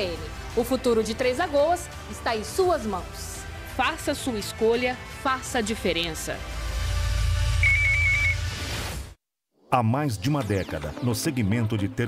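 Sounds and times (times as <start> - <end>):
high warbling electronic beep: 7.6 - 8.7.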